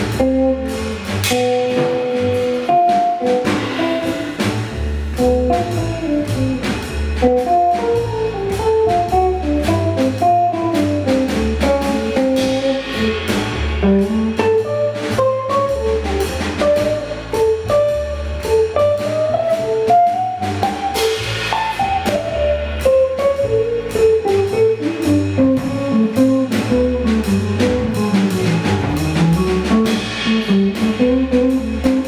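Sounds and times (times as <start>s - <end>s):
electric guitar melody: 0.0s - 13.1s, 13.8s - 28.6s
drum kit with busy cymbals: 0.0s - 32.0s
walking bass line: 0.0s - 32.0s.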